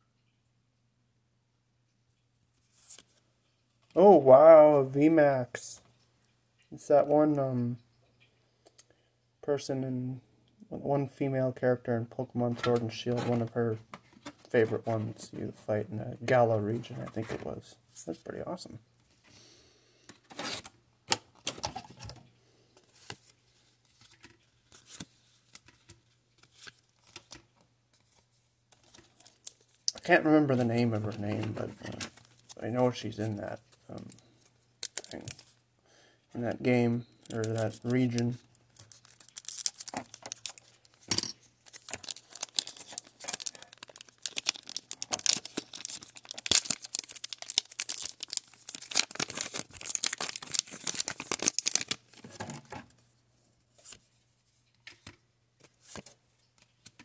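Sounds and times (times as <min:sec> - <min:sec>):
foil wrapper crinkling and tearing: 0:34.8 - 0:35.6, 0:37.2 - 0:52.5
trading cards flipping: 0:37.3 - 0:52.4.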